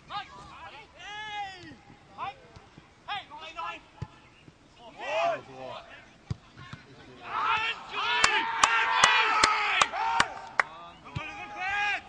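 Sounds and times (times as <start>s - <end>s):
spectators shouting and chanting: 7.2s - 12.0s.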